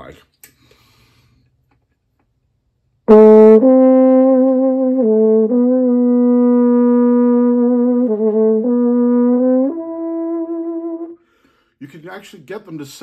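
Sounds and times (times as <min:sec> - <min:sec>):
muted trombone long notes: 0:03.1 - 0:11.2.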